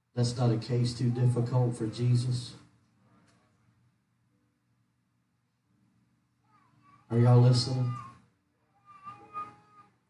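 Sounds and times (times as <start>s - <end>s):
man speaking: 0.1s - 2.7s, 7.1s - 8.2s
faint high-pitched voice calling: 6.4s - 10.0s.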